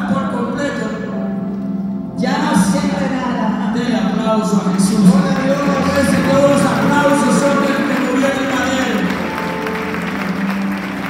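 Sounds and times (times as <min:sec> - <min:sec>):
congregation clapping: 0:04.6 - 0:11.0
band holding a chord: 0:04.8 - 0:11.0.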